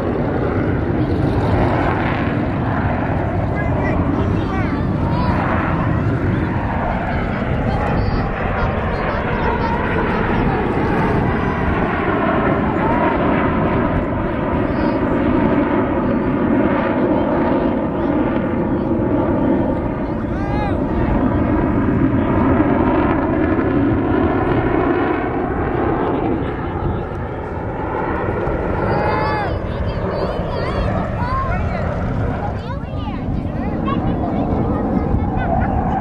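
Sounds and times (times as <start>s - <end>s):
jets passing overhead: 0.0s - 36.0s.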